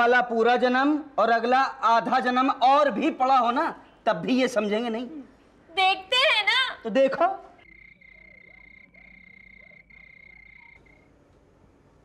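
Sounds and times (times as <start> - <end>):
frogs croaking: 7.6 - 11.2.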